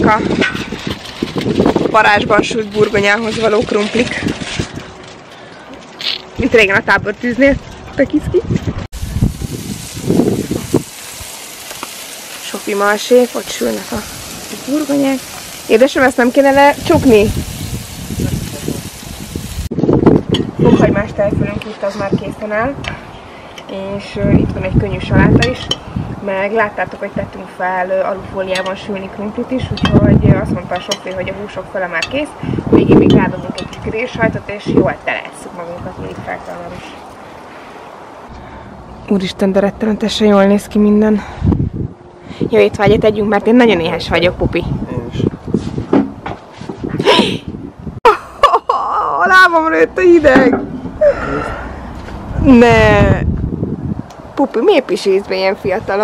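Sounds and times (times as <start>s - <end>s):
wind rumble on microphone: 0.0s - 5.2s, 6.2s - 11.3s, 13.4s - 37.2s, 37.9s - 48.2s, 49.9s - 56.0s
outdoor background noise: 0.0s - 56.0s
meat sizzling on a grill: 9.0s - 19.8s.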